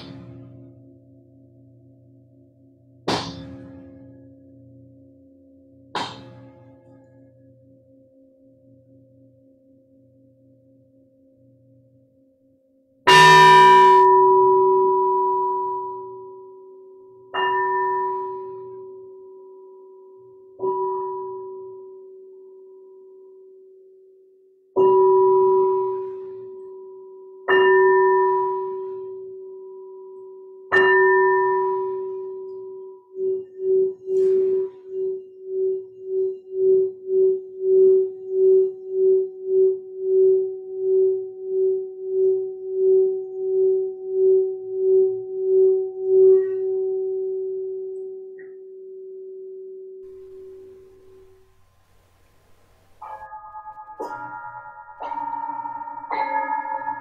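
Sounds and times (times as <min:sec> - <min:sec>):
singing bowl rim sustained tone: 0:00.0 - 0:57.0
singing bowl struck with mallet: 0:13.1 - 0:19.5, 0:24.8 - 0:48.8, 0:50.0 - 0:57.0
larger brass singing bowls ringing: 0:13.1 - 0:23.1, 0:24.8 - 0:48.7, 0:50.1 - 0:57.0.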